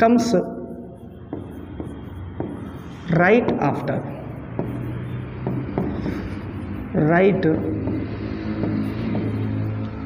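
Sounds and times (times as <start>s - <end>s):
pen rubbing across board: 0.8s - 10.0s.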